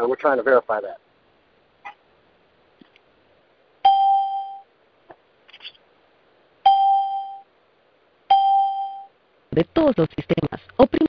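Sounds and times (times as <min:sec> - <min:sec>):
bell-like chime over telephone: 0:06.7 - 0:07.4, 0:08.3 - 0:09.1.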